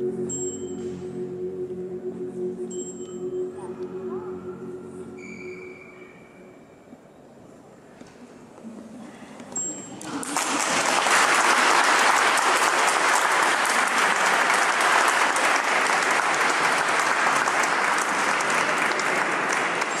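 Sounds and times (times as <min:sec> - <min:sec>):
crowd applauding: 0:10.0 - 0:20.0.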